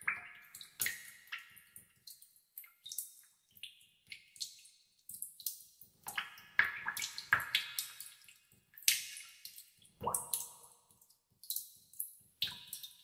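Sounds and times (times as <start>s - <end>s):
water drops plinking in a cave: 0.0s - 13.0s.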